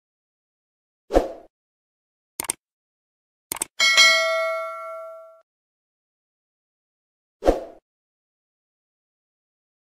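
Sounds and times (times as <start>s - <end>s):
notification bell ding: 3.8s - 5.4s.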